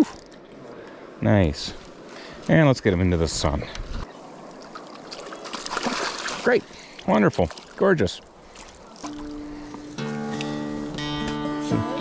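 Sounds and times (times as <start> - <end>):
stream water trickling: 4.0 - 10.0.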